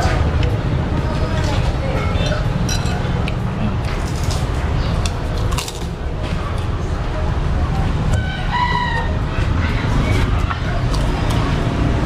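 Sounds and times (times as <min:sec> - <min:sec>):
faint voices: 0:00.0 - 0:12.0
street noise rumble: 0:00.0 - 0:12.0.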